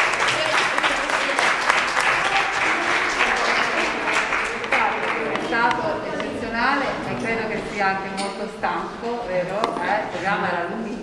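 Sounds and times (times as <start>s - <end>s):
person talking: 2.2s - 11.0s.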